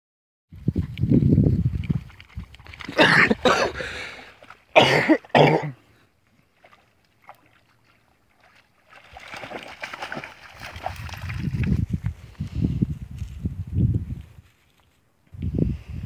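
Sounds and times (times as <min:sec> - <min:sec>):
person coughing: 0:02.9 - 0:03.9, 0:04.8 - 0:05.8
footsteps through dry grass: 0:10.2 - 0:15.2.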